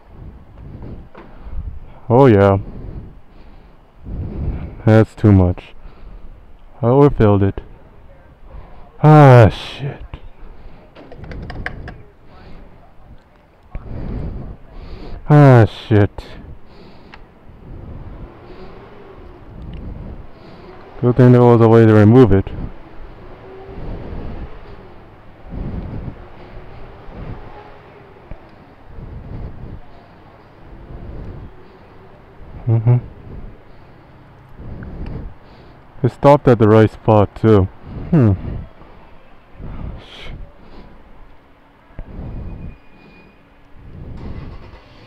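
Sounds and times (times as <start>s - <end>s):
wind on microphone: 0.0s - 2.0s, 2.6s - 3.2s, 4.0s - 4.8s, 11.2s - 12.0s, 13.1s - 15.2s, 17.4s - 21.0s, 22.3s - 31.8s, 32.4s - 33.7s, 34.5s - 35.4s, 37.7s - 38.8s, 39.6s - 40.6s, 42.0s - 42.8s, 43.8s - 44.8s
low rumble: 0.0s - 4.9s, 16.4s - 33.9s, 34.5s - 35.5s
fuel nozzle clicking and clattering: 11.0s - 12.0s.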